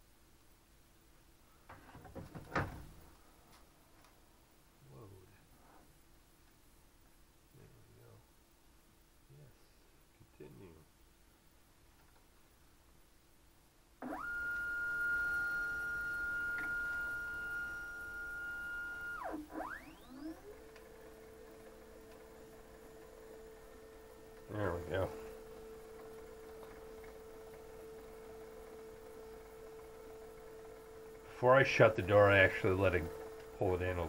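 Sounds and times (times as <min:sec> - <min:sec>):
filament feed motor whining: 0:14.0 - 0:34.0.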